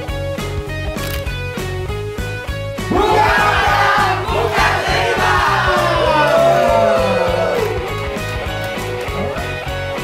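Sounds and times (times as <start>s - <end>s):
music with steady beat: 0.0s - 10.0s
crowd cheering and shouting: 2.9s - 8.2s.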